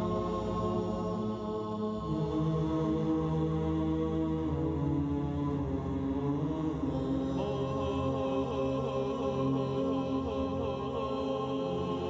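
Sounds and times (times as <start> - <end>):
slow chant-like vocal music: 0.0 - 12.0.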